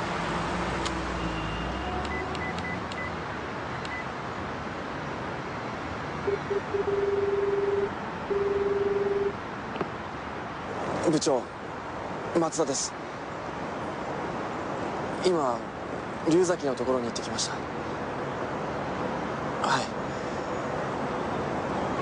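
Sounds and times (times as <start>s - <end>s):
street traffic noise: 0.0s - 22.0s
phone key clicks with beeps: 2.0s - 3.1s, 3.8s - 4.0s.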